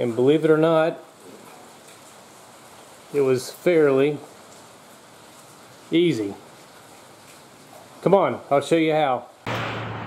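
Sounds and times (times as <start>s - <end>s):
rain hiss: 0.0s - 10.0s.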